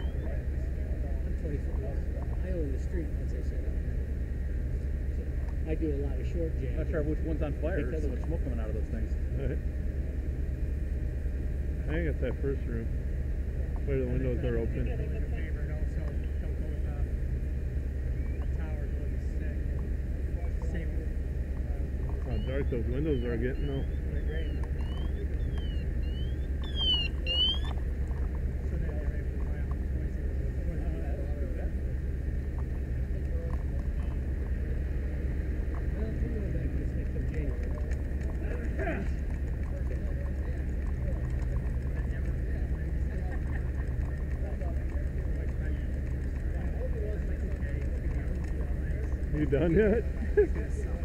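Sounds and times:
warbling electronic siren tone: 0:00.0 - 0:00.5, 0:22.2 - 0:27.9
diesel engine humming: 0:00.0 - 0:51.0.

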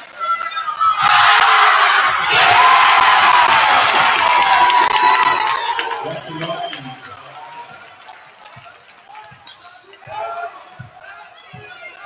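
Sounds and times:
murmur of crowd voices: 0:03.6 - 0:12.0.

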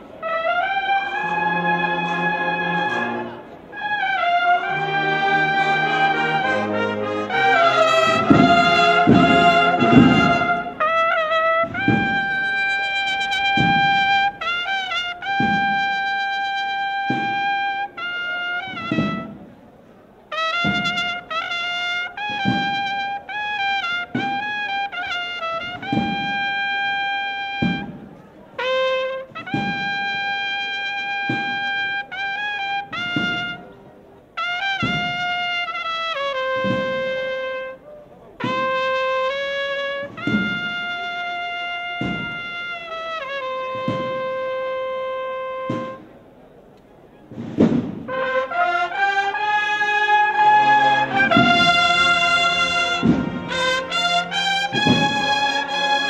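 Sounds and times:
trumpets playing melody: 0:00.0 - 0:56.0
marching drum beat: 0:04.6 - 0:17.6, 0:18.7 - 0:19.4, 0:20.6 - 0:23.0, 0:23.8 - 0:28.1, 0:29.0 - 0:31.9, 0:32.8 - 0:33.6, 0:34.8 - 0:37.7, 0:38.4 - 0:46.0, 0:47.3 - 0:48.9, 0:50.2 - 0:56.0.

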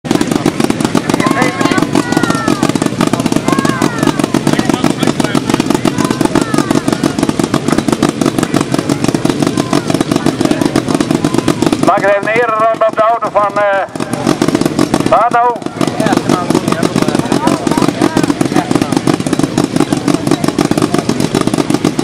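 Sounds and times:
car engine running loudly: 0:00.0 - 0:22.0.

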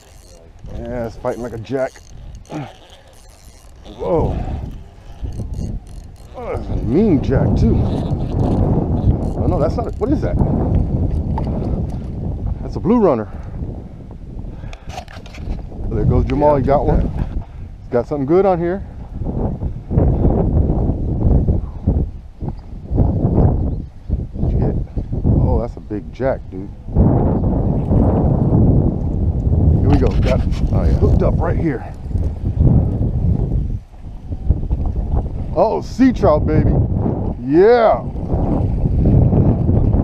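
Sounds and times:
short clicks and rustles: 0:00.0 - 0:06.4
wind buffeting microphone: 0:00.0 - 0:40.0.

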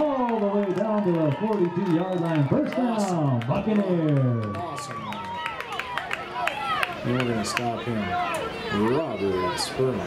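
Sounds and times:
children shouting: 0:04.4 - 0:10.0.

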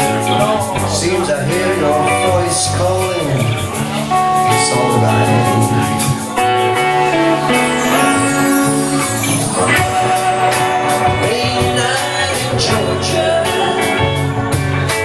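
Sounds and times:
drums with steady cymbal beat: 0:00.0 - 0:15.0
electric guitar chords: 0:00.0 - 0:15.0
held melody line: 0:00.0 - 0:15.0
keyboard chords: 0:00.0 - 0:15.0.

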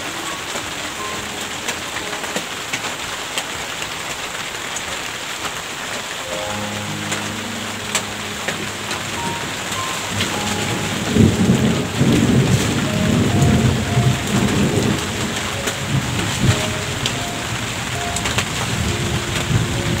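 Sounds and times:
soft sustained musical tones: 0:00.0 - 0:04.0, 0:06.2 - 0:20.0
steady rain hiss: 0:00.0 - 0:20.0
water drips ticking: 0:00.0 - 0:20.0
rolling thunder rumble: 0:06.5 - 0:20.0.

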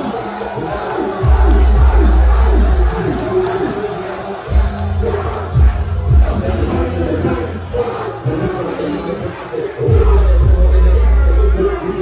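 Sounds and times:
crowd shouting and singing along: 0:00.0 - 0:12.0
live music through pa: 0:00.0 - 0:12.0
heavy bass line: 0:01.2 - 0:08.4, 0:09.9 - 0:12.0.

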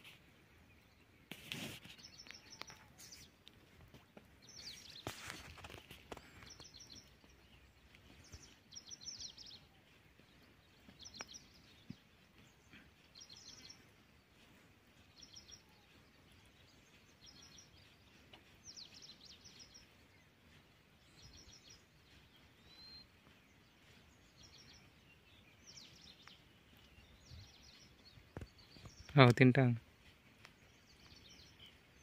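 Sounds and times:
small bird chirping: 0:00.7 - 0:32.0.

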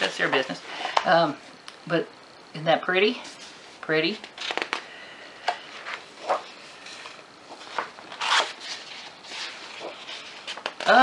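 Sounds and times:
paper rustling and sliding: 0:05.4 - 0:11.0.

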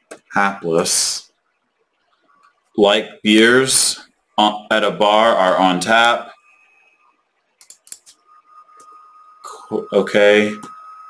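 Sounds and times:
faint steady high tone: 0:00.4 - 0:11.0
computer keyboard typing: 0:07.6 - 0:08.2.

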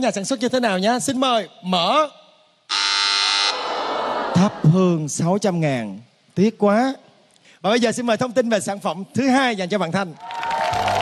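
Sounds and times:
wrong-answer buzzer: 0:02.7 - 0:03.6.

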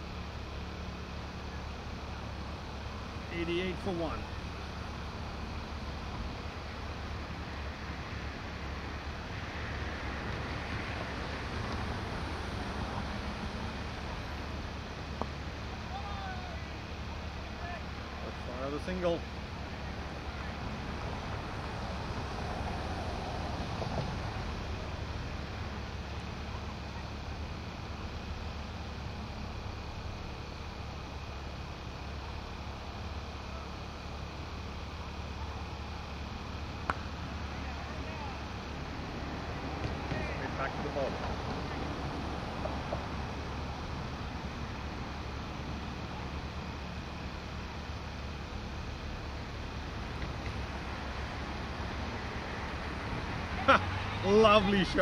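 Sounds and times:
faint distant voices: 0:00.0 - 0:55.0.

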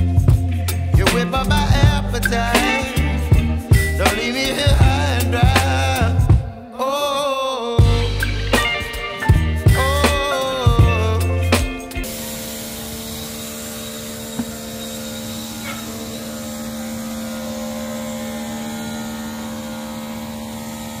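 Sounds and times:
electric pressure washer humming: 0:00.0 - 0:06.3, 0:07.8 - 0:21.0
music: 0:00.0 - 0:21.0.

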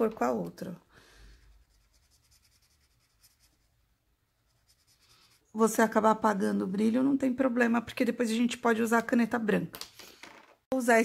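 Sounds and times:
felt-tip marker scratching on paper: 0:01.3 - 0:03.8, 0:04.4 - 0:05.5.

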